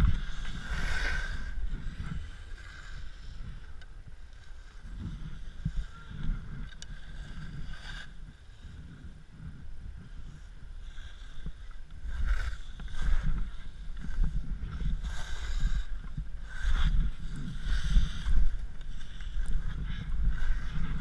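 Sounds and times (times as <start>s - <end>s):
skis scraping over snow: 0.0s - 21.0s
wind buffeting microphone: 0.0s - 21.0s.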